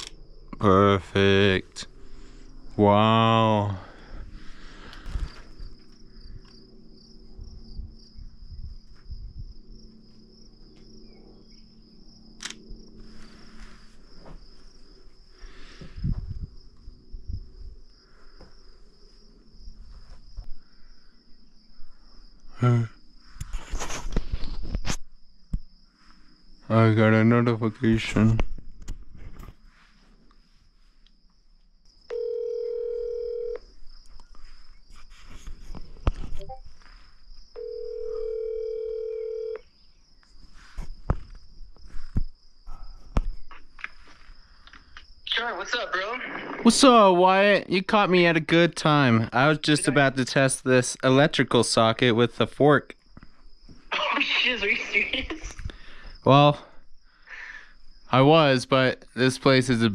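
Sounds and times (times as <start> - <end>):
sharp click: 0.0 - 0.2, 12.4 - 12.6
high-pitched insect trill: 0.0 - 28.3, 30.6 - 45.6, 46.6 - 53.9, 54.5 - 59.9
phone alert beep: 36.4 - 36.6
handling thumps and footsteps: 40.4 - 42.4.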